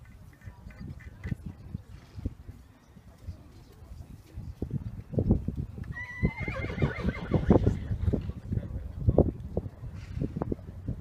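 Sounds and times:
horse whinnying: 0:05.9 - 0:08.0.

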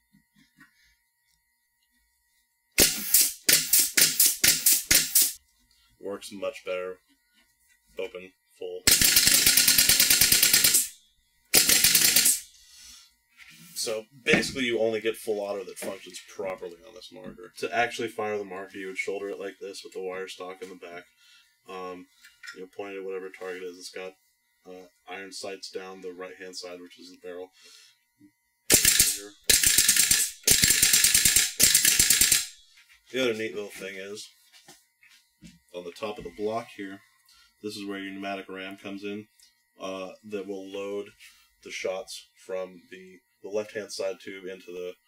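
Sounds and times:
rapid pneumatic shots: 0:02.8 - 0:05.4, 0:08.9 - 0:12.6, 0:28.7 - 0:32.6
air exhaust hiss: 0:12.1 - 0:14.1.

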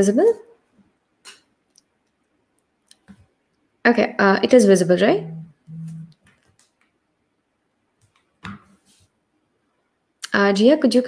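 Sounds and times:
woman's voice: 0:00.0 - 0:00.5, 0:03.9 - 0:06.1, 0:10.2 - 0:11.0.

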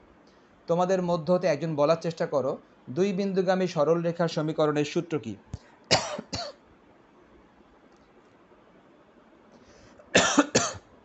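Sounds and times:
faint background hiss: 0:00.0 - 0:11.0
man coughing: 0:05.9 - 0:06.6, 0:10.1 - 0:10.8.

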